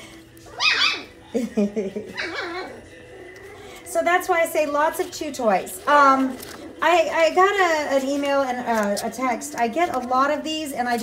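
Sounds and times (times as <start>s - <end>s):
puppies yipping and whimpering: 0.4s - 1.2s, 2.0s - 3.8s.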